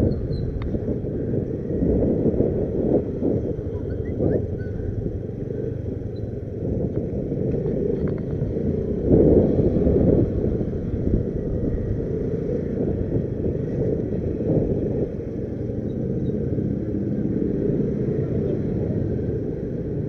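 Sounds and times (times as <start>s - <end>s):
motorbike engine rumble: 0.0s - 20.0s
road noise: 0.0s - 20.0s.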